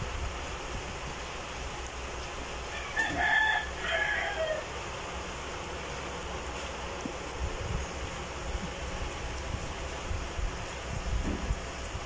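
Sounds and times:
rooster crowing: 0:02.7 - 0:04.8.

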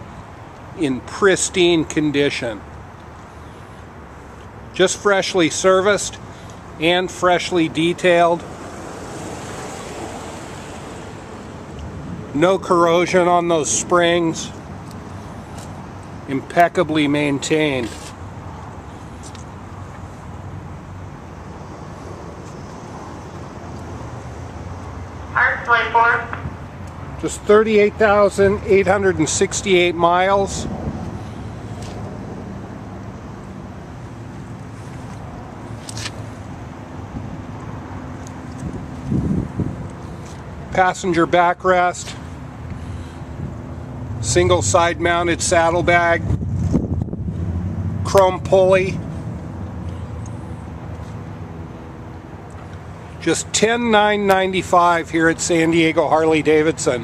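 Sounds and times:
wind buffeting microphone: 0:38.6 - 0:39.9, 0:46.2 - 0:47.9.

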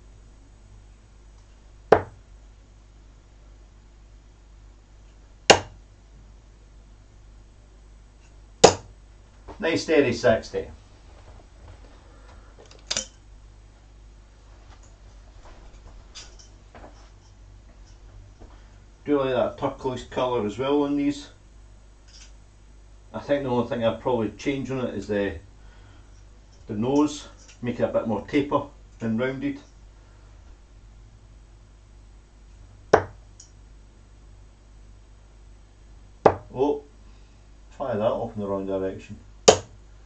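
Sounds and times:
dart thudding into dartboard: 0:01.9 - 0:02.2, 0:05.5 - 0:05.8, 0:08.6 - 0:08.9, 0:32.9 - 0:33.2, 0:36.3 - 0:36.5, 0:39.5 - 0:39.7.

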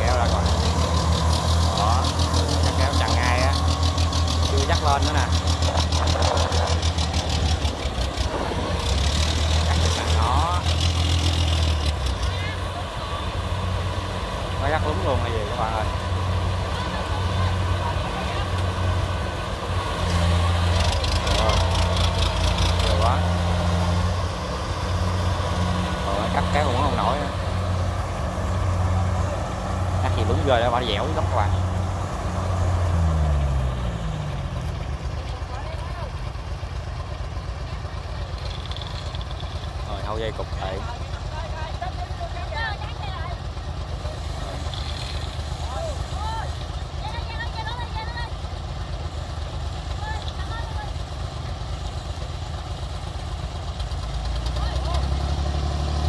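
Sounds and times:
voices calling out: 0:00.0 - 0:53.0
combine harvester diesel engine: 0:00.0 - 0:56.0.

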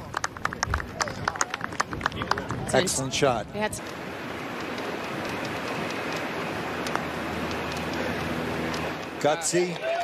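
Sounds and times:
outdoor noise hiss: 0:00.0 - 0:10.0.

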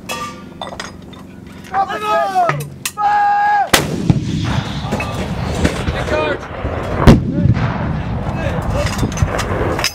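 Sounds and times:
artillery gun firing: 0:03.7 - 0:08.3.

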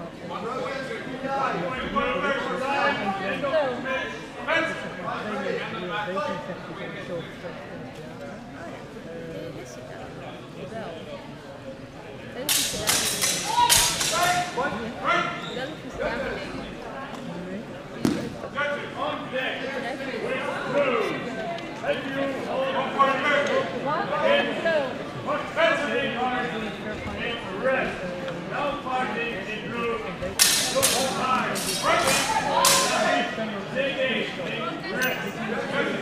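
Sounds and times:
indistinct chatter of voices: 0:00.0 - 0:36.0.

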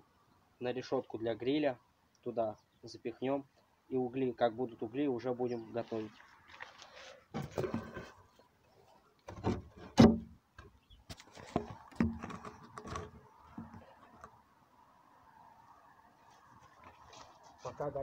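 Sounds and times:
camera handling knocks and rubbing: 0:07.4 - 0:08.2, 0:09.3 - 0:14.3.

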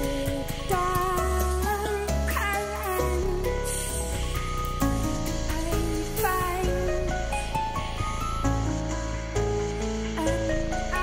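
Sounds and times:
woman singing into microphone: 0:00.0 - 0:03.6, 0:05.6 - 0:07.1.

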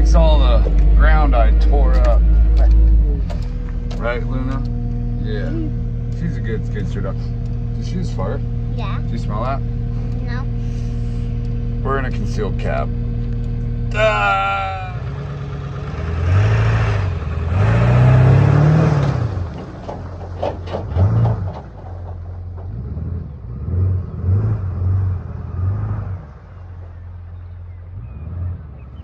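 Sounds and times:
diesel engine revving: 0:00.0 - 0:29.0
person saying ah: 0:05.4 - 0:05.8.

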